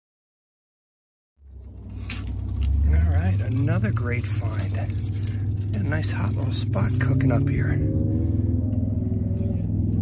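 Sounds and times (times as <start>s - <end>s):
low rumble: 1.4s - 10.0s
broken glass clinking and rattling: 1.6s - 7.4s.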